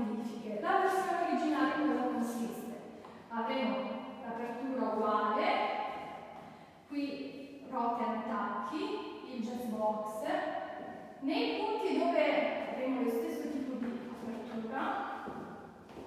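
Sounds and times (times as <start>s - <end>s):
woman talking: 0.0s - 5.6s, 6.9s - 10.5s, 11.2s - 15.2s.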